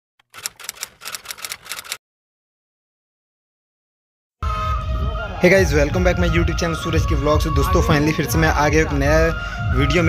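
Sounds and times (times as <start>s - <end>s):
typewriter key clacks: 0.2s - 2.0s.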